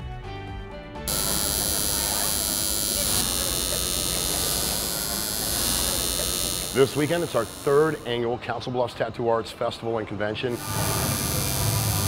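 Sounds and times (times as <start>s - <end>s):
tattoo machine buzzing: 1.1s - 8.2s, 10.5s - 12.0s.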